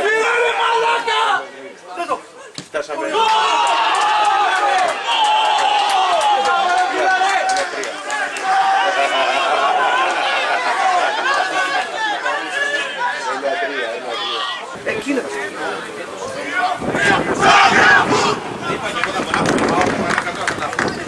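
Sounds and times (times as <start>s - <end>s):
people shouting and cheering: 0.0s - 21.0s.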